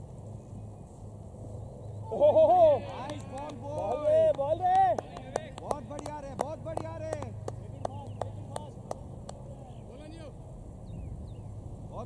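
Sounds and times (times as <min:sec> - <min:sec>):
low steady hum: 0:00.0 - 0:12.0
sharp claps: 0:02.8 - 0:09.4.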